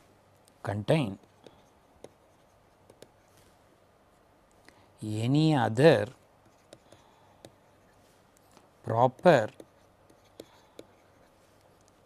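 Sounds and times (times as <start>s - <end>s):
pen tapping and scratching: 1.1s - 3.2s, 6.4s - 7.8s, 8.4s - 12.0s.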